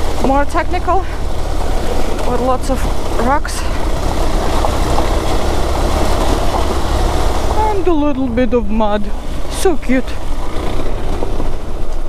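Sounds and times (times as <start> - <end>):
motorcycle engine running: 0.0 - 12.0
steady low rumble: 0.0 - 12.0.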